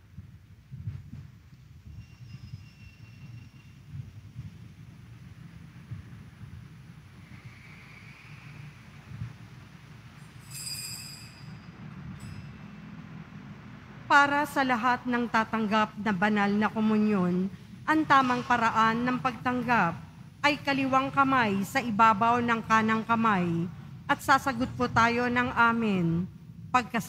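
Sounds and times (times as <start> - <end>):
low rumble of church background: 0.0 - 10.4, 11.3 - 27.0
faint ringing tone: 1.8 - 4.7, 10.2 - 13.4
bright chime-like ring: 10.4 - 12.8.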